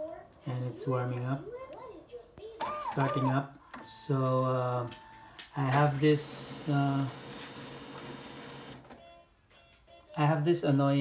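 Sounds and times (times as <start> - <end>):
printer machine whir: 2.6 - 9.0.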